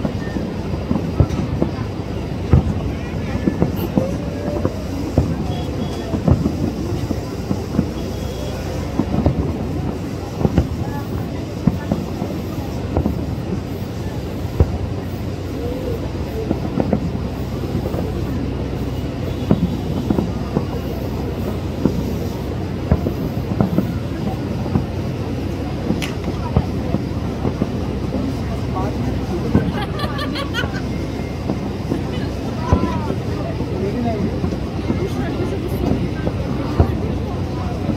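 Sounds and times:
distant fireworks rumble: 0.0 - 37.9
sharp firework bangs: 0.0 - 37.9.

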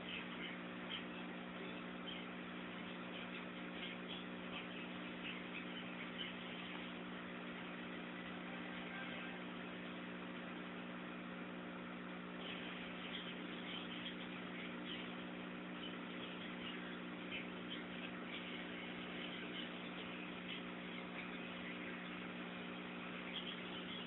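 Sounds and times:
low hum with hiss: 0.0 - 24.0.

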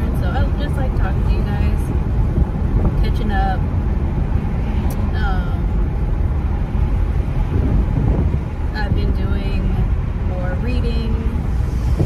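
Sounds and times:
car road and engine rumble: 0.0 - 12.0
wind noise on microphone: 0.0 - 12.0.

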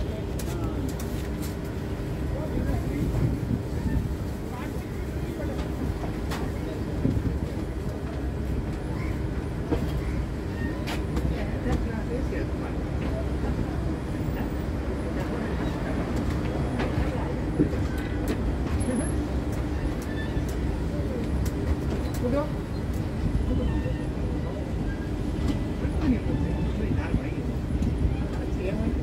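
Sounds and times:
train rumbling: 0.0 - 29.0.

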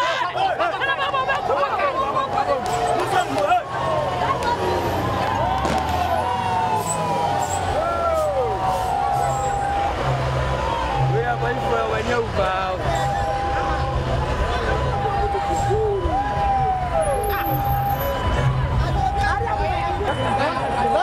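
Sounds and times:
crowd shouting: 0.0 - 21.0
truck engine rumble: 0.0 - 21.0
vehicles driving slowly: 0.0 - 21.0.

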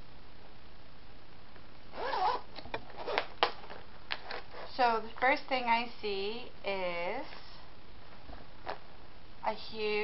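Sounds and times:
zipper pulled open: 1.9 - 4.8.

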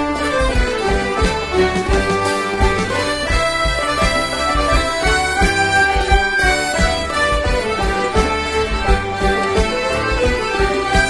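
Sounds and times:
folk band playing dance tune: 0.0 - 11.0.

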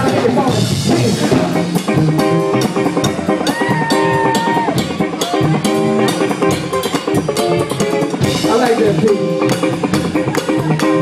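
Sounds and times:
drum kit steady beat: 0.0 - 11.0
funk band playing: 0.0 - 11.0.

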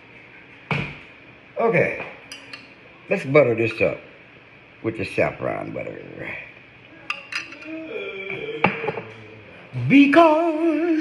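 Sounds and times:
metal spoon clinking on glass: 2.3 - 2.8, 7.1 - 7.7.

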